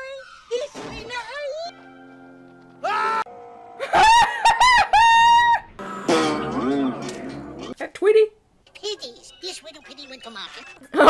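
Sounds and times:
high wavering crowing cry: 1.7s - 6.1s.

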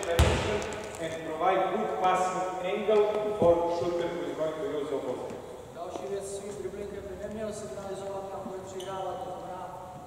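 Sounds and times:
man speaking: 0.0s - 10.0s
basketball bouncing on hardwood: 0.1s - 0.8s.

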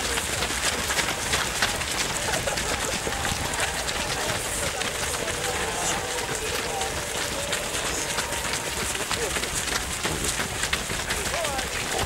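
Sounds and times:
indistinct voices: 0.0s - 12.0s
runners' footsteps: 0.0s - 12.0s.

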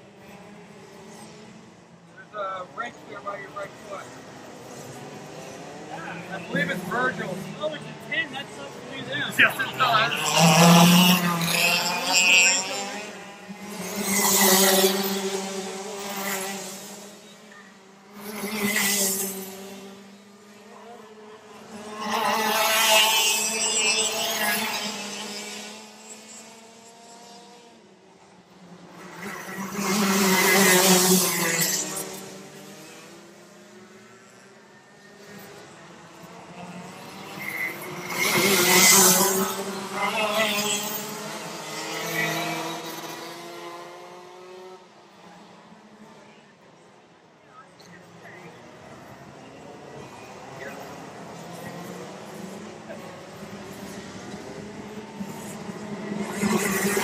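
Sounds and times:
racing kart engines revving: 0.0s - 57.0s.

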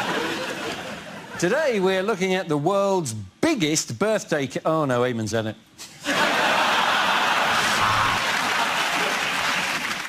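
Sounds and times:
audience laughing: 6.0s - 9.6s
audience applauding: 6.8s - 10.0s.

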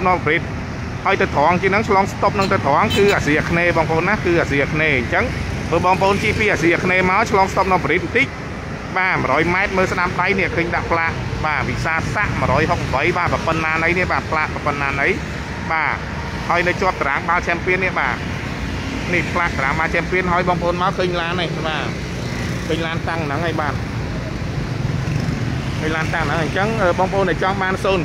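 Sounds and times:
person talking: 1.1s - 18.3s, 19.1s - 22.0s, 22.6s - 23.9s.

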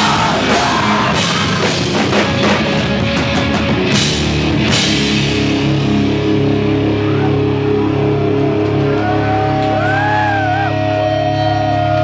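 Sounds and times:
drums and cymbals crashing: 0.0s - 6.8s.

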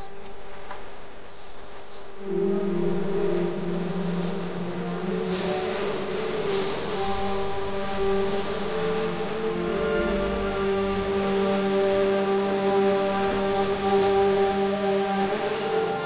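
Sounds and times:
slow sustained background music: 0.0s - 16.0s
wavering melody line: 2.2s - 16.0s.

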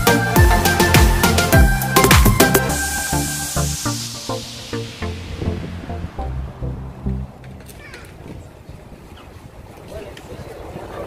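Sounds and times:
wind rumble on microphone: 5.0s - 11.0s.

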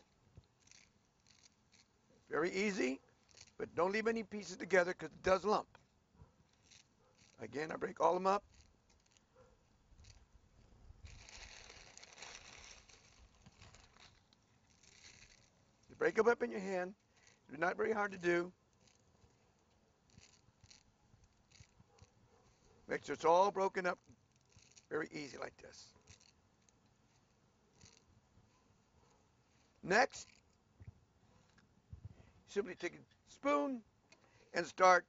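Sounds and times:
faint rustle: 8.4s - 17.6s, 18.2s - 23.0s, 23.7s - 33.3s
noodles crackling in hot oil: 11.0s - 16.0s.

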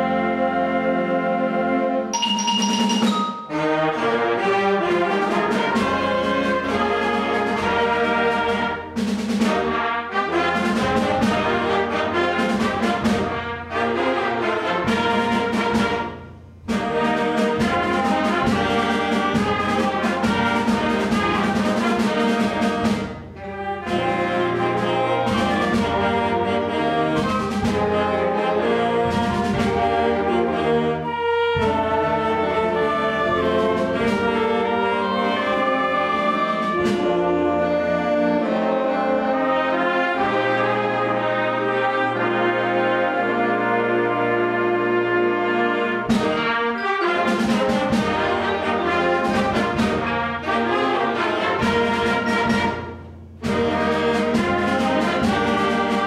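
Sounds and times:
concert band playing: 2.2s - 56.0s.

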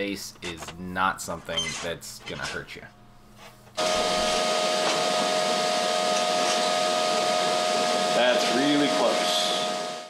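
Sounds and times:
shop machine motor whirring: 3.8s - 10.0s.

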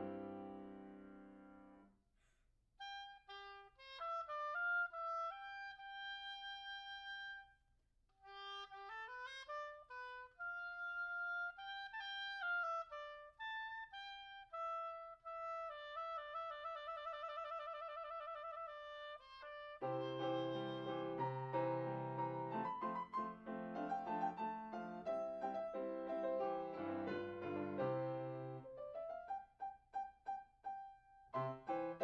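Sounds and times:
solo woodwind classical melody: 0.0s - 1.8s, 2.8s - 7.6s, 8.2s - 32.0s.

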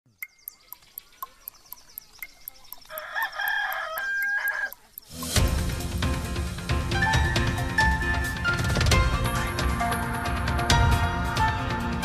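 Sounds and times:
clock ticking: 0.1s - 5.8s
rooster crowing: 2.9s - 4.8s
loud theme music: 5.1s - 12.0s.

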